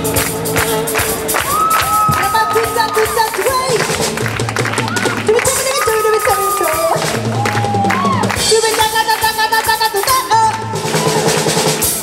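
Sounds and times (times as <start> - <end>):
live band playing: 0.0 - 12.0.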